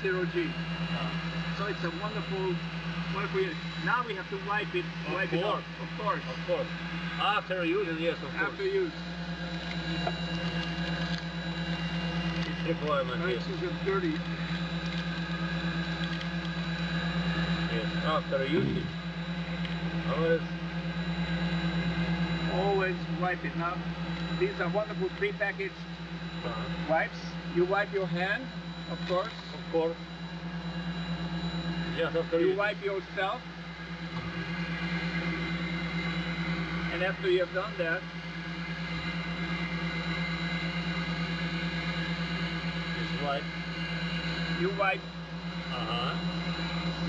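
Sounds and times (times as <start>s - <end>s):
cabin ventilation drone: 0.0s - 47.0s
faint high whines: 0.0s - 47.0s
suction fan humming: 0.0s - 47.0s
short voice sound: 18.5s - 18.9s.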